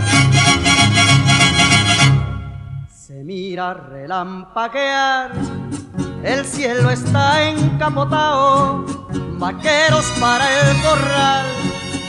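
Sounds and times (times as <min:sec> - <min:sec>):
mariachi band strumming: 0:00.0 - 0:12.0.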